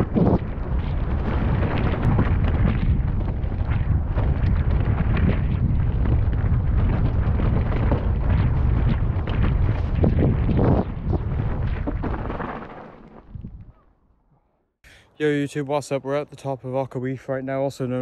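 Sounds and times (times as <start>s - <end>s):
bike rattling and knocking: 0.0s - 10.9s
wind rumble on microphone: 0.0s - 13.8s.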